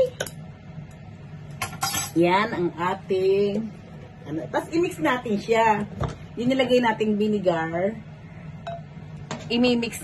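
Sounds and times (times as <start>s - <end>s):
kitchen utensils clinking: 1.6s - 2.7s.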